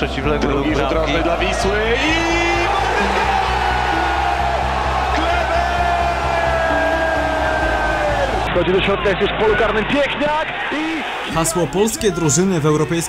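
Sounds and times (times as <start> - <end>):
background music: 0.0 - 13.0
crowd noise: 0.0 - 13.0.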